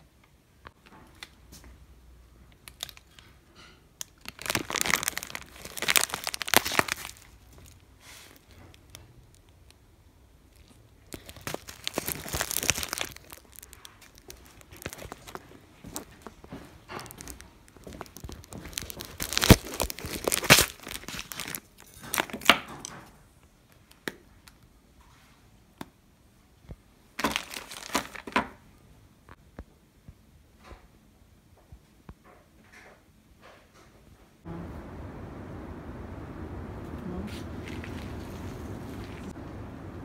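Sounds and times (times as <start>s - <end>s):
paper tea bags crinkling: 4.0s - 9.7s, 10.5s - 22.5s, 27.2s - 28.6s, 37.4s - 39.3s.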